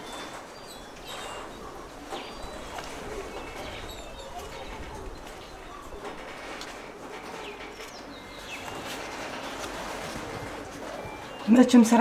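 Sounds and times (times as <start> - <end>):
birds chirping and calling: 0.0 - 12.0.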